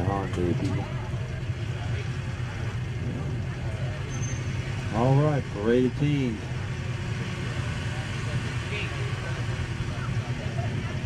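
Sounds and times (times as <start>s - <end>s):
noisy outdoor background: 0.0s - 11.0s
vehicle engine idling: 0.0s - 11.0s.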